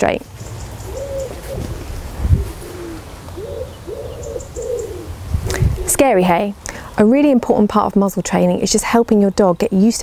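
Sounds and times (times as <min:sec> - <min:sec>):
pigeon cooing: 0:00.7 - 0:06.0.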